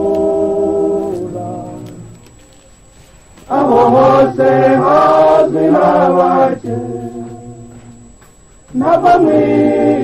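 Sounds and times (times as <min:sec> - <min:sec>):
group singing slow chant: 0:00.0 - 0:02.3, 0:03.5 - 0:10.0.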